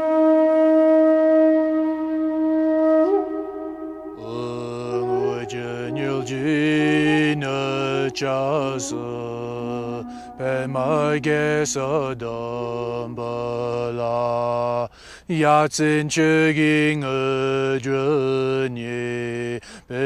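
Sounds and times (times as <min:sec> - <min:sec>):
deep male voice chanting: 0:04.2 - 0:20.0.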